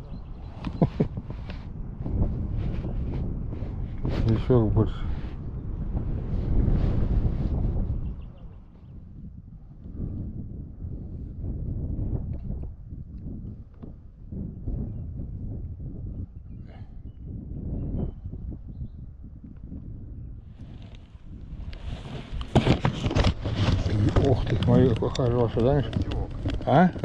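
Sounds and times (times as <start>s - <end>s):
wind buffeting the microphone: 0.0s - 27.0s.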